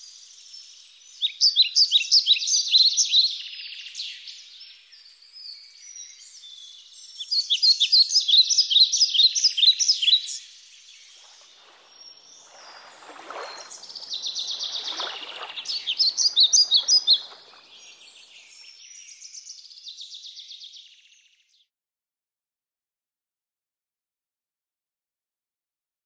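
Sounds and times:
songbirds chirping: 10.4s - 21.5s
soft bird calls: 10.9s - 19.1s.

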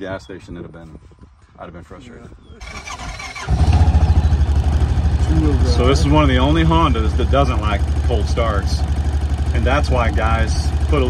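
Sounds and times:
engine starting and running: 2.6s - 11.0s.

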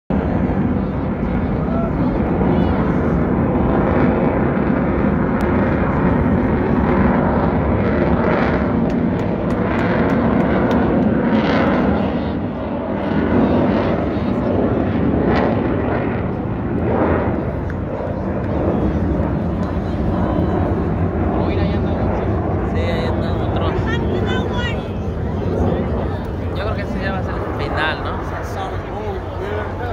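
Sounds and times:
jet engine roar overhead: 0.1s - 29.9s.

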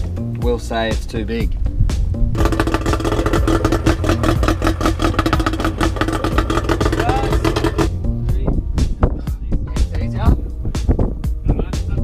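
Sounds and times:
fast steady beat: 2.4s - 8.1s
held melody: 2.4s - 8.2s.

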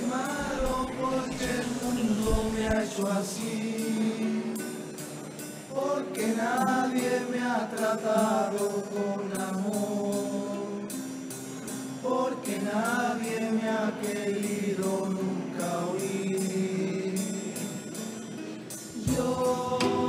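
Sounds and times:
male chorus singing in harmony: 0.0s - 20.0s.

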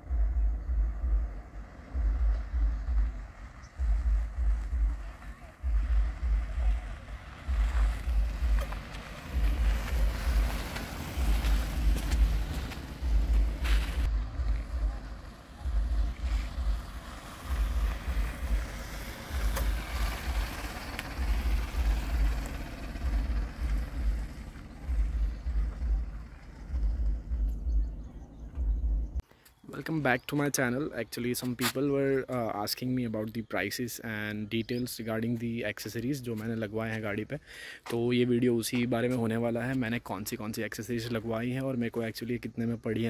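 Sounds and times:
car moving on dirt road: 0.0s - 32.6s.

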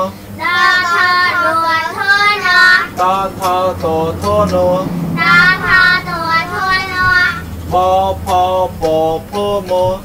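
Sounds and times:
children chanting: 0.0s - 9.8s.

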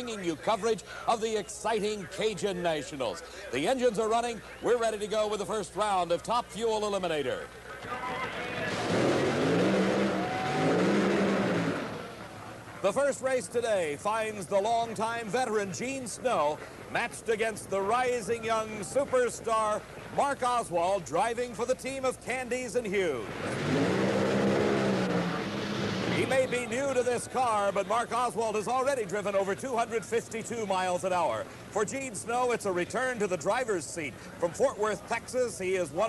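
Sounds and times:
spinning tyres rushing: 8.0s - 12.8s, 23.3s - 27.0s
dragster engine revving: 8.2s - 12.5s, 23.3s - 27.0s.

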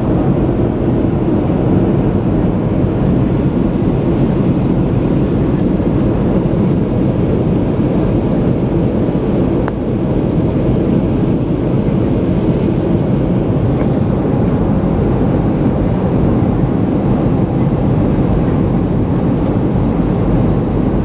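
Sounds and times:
airflow over fuselage: 0.0s - 21.0s
jet engines rumbling: 0.0s - 21.0s.

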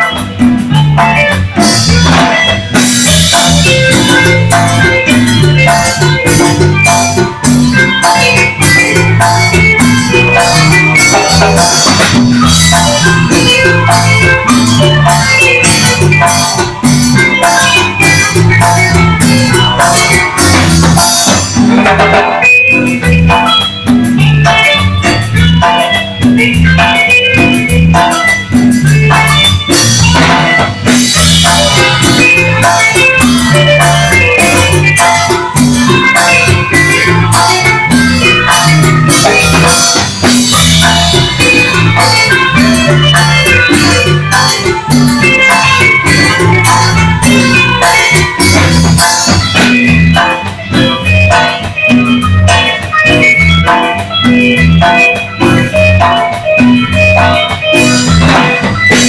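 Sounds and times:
congas: 0.0s - 59.0s
live band playing dance music: 0.0s - 59.0s.

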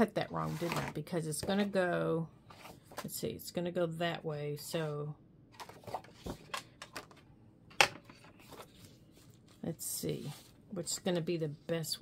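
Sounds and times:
paper rustling: 8.1s - 9.6s.

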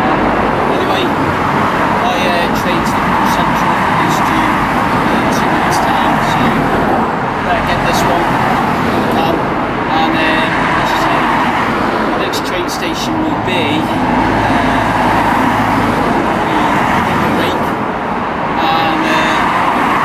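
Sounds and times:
cars driving past: 0.0s - 20.0s
car passing close by: 13.3s - 20.0s.

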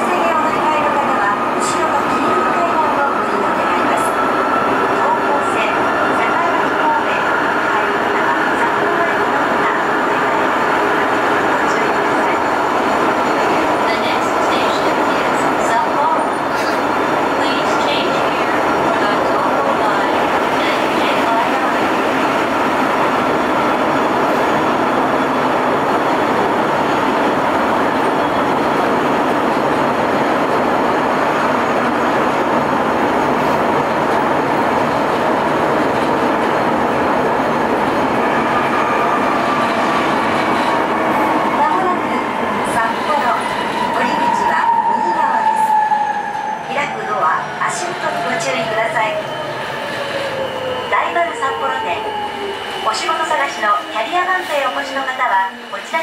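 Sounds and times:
subway train running: 0.0s - 56.0s.

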